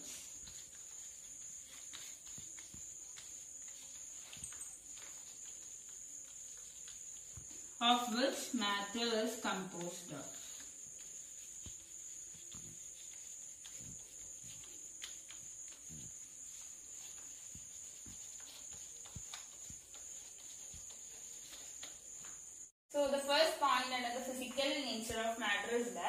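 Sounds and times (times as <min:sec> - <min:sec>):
chalk on blackboard: 0:00.0 - 0:22.6.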